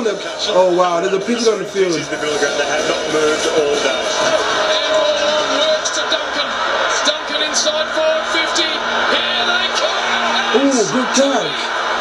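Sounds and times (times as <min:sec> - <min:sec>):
man's voice: 0:00.0 - 0:11.7.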